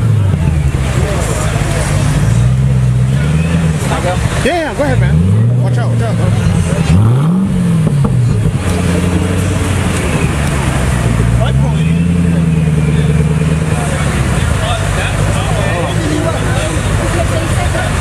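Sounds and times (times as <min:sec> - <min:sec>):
car engine revving: 0:00.0 - 0:18.0.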